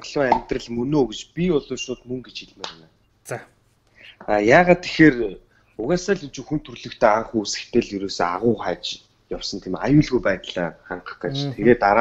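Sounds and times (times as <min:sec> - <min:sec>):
person talking: 0:02.2 - 0:06.3, 0:11.0 - 0:12.0.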